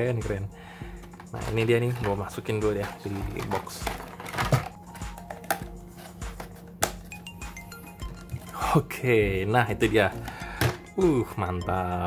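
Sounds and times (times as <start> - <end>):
soft background music: 0.0 - 12.0
plastic packaging clicks and taps: 1.0 - 7.1, 10.2 - 10.9.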